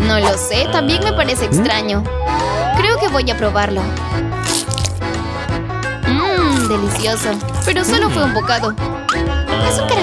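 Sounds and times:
background music: 0.0s - 10.0s
crunchy bite into candy: 4.4s - 5.1s, 6.4s - 7.8s.

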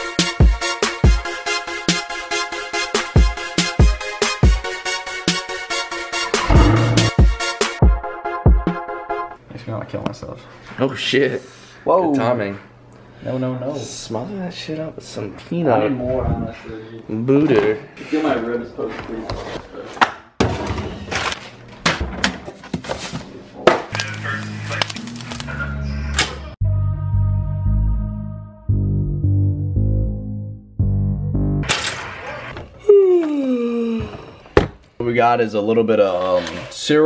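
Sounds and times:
music: 0.0s - 9.4s, 23.9s - 31.7s.

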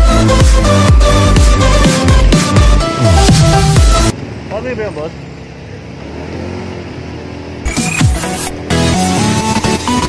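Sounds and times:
music: 0.0s - 4.1s, 7.7s - 10.0s
motorcycle engine running: 0.0s - 8.9s.

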